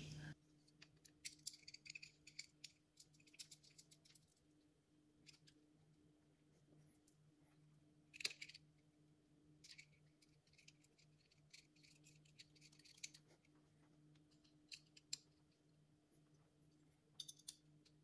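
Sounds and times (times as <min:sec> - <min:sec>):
faint low hum: 0:00.0 - 0:18.0
hex key clicks and scrapes: 0:01.0 - 0:04.4, 0:09.6 - 0:13.5.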